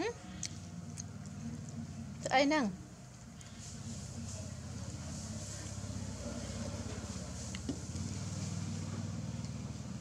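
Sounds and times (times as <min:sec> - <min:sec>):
low engine hum: 0:03.7 - 0:10.0.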